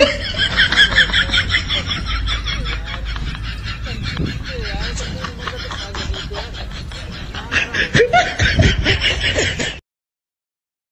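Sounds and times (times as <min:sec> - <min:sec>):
pulsing laughter: 0:00.0 - 0:09.8.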